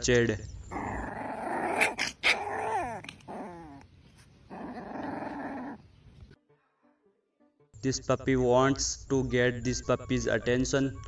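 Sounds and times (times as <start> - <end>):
puppy yapping: 0.7 - 3.8
puppy whiny yelps: 0.7 - 3.9
puppy growling: 0.7 - 6.0.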